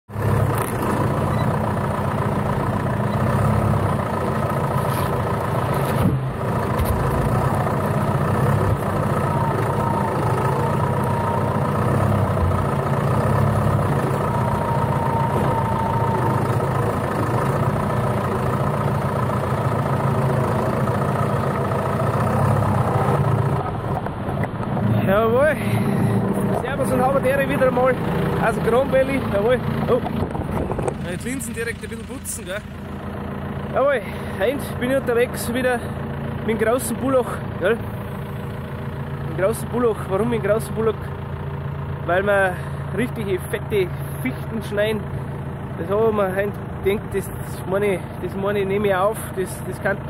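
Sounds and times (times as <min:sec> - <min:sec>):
tractor diesel engine running: 0:00.1 - 0:50.0.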